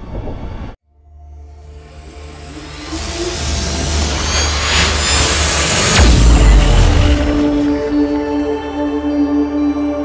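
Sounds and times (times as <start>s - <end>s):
low drone: 0.6s - 10.0s
hissing whoosh: 1.7s - 8.0s.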